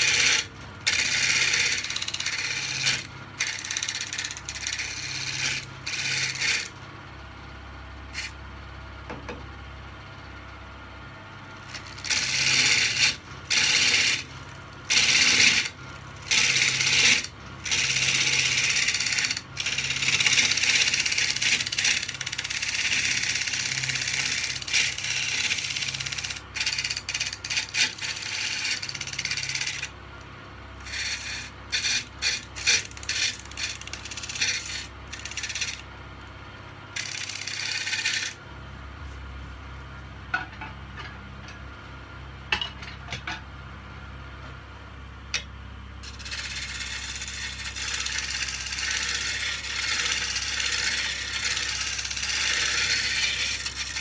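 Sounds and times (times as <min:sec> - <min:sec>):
gouge shaving spinning wood: 0:00.0 - 0:06.8, 0:08.1 - 0:08.4, 0:11.4 - 0:30.0, 0:30.8 - 0:36.0, 0:37.0 - 0:38.4, 0:46.0 - 0:54.0
wood lathe humming: 0:00.0 - 0:06.8, 0:08.1 - 0:08.4, 0:11.5 - 0:30.0, 0:30.8 - 0:35.9, 0:37.0 - 0:38.4, 0:46.0 - 0:54.0.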